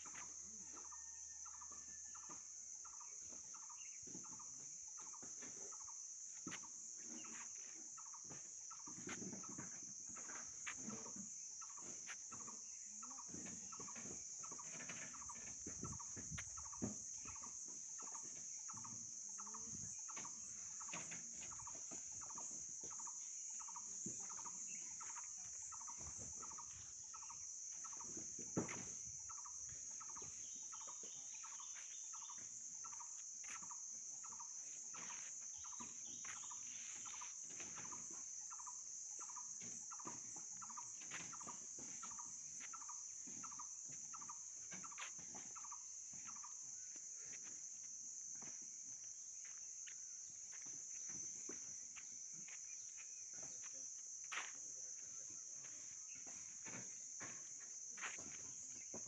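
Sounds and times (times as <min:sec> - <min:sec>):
high-pitched insect buzz: 0:10.3 - 0:59.0.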